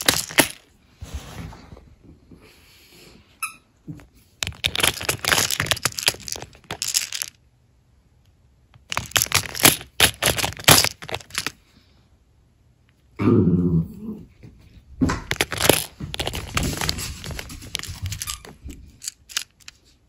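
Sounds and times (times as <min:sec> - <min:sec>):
small charms rattling: 0:00.0 - 0:00.6, 0:04.4 - 0:07.4, 0:08.8 - 0:11.6, 0:15.3 - 0:19.9
plastic boxes clattering: 0:00.0 - 0:00.7, 0:04.4 - 0:07.4, 0:08.8 - 0:11.6, 0:15.1 - 0:19.7.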